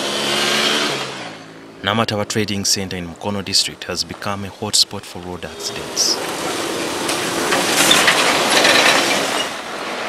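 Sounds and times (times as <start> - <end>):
heavy truck passing on wet road: 5.5 - 10.0.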